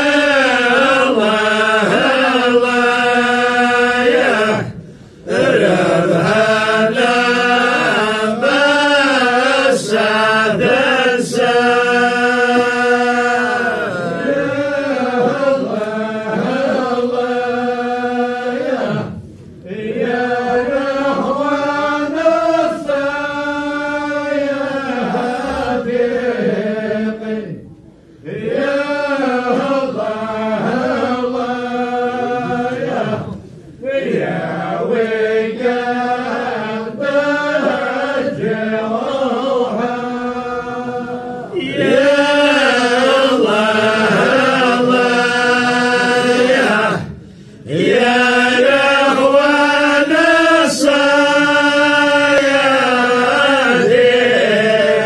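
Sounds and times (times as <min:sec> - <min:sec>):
person chanting: 0:00.0 - 0:27.6, 0:28.2 - 0:55.0.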